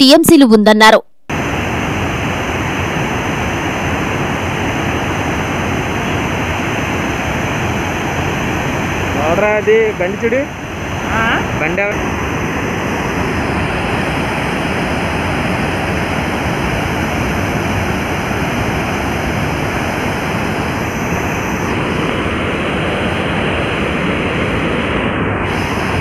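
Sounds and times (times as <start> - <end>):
loud rush of water: 1.3 - 26.0.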